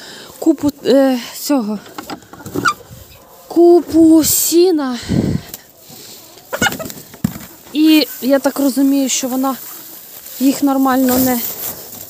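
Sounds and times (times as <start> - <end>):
chickens clucking: 0.6 - 4.5, 5.2 - 12.0
hay rustling: 2.3 - 4.5, 5.8 - 12.0.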